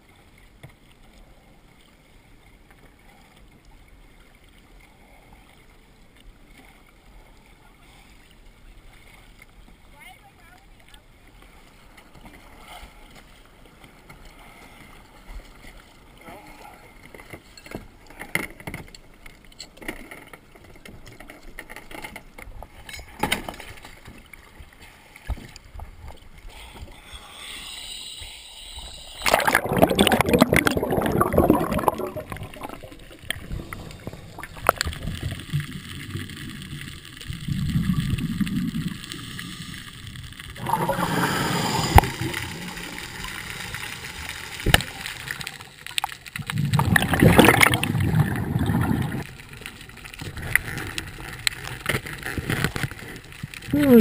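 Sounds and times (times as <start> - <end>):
rushing gurgling water: 28.9 - 54.0.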